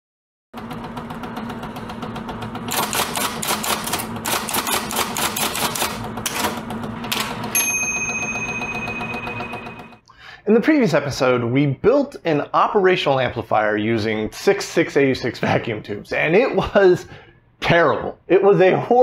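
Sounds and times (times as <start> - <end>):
typewriter keys clattering: 2.7 - 7.5
typewriter bell ding: 7.4 - 10.0.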